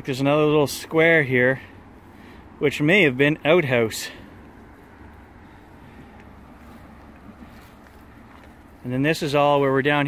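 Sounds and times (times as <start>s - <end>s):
faint low outdoor rumble: 0.0s - 10.0s.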